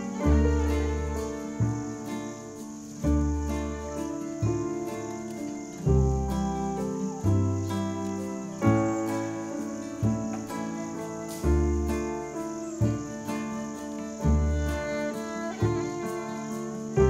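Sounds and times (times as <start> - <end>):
acoustic ensemble music: 0.0 - 17.0
insects chirring: 0.0 - 17.0.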